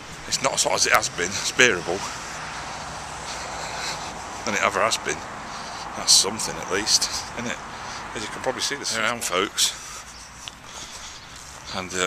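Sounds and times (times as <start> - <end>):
road traffic noise: 0.0 - 12.0
vehicle passing: 0.0 - 12.0.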